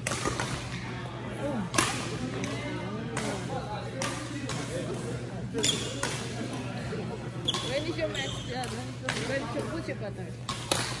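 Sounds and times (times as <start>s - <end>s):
racket striking shuttlecock: 0.0s - 0.7s, 10.5s - 11.0s.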